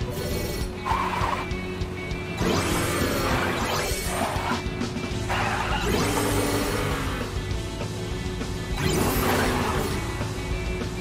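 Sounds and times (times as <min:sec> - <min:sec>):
video game background music: 0:00.0 - 0:11.0.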